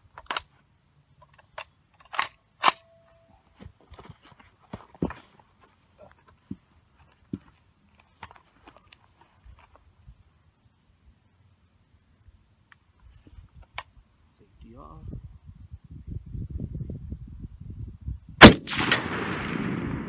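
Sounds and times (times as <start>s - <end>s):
rifle handling clicks and rustles: 0.0s - 4.4s, 7.0s - 9.9s.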